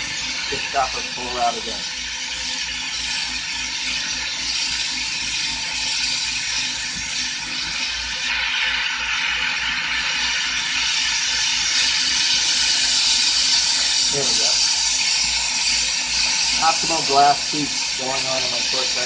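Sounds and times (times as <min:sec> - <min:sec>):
torch flame hissing: 0:00.0 - 0:19.0.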